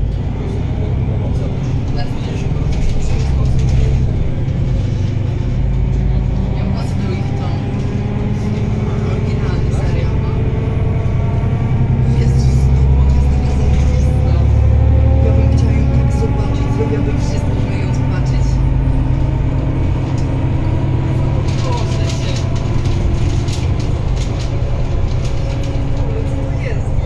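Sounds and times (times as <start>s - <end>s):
bus diesel engine rumble: 0.0s - 27.0s
road noise: 0.0s - 27.0s.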